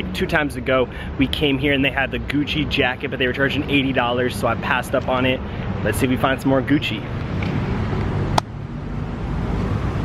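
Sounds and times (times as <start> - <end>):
passing traffic: 0.0 - 10.0.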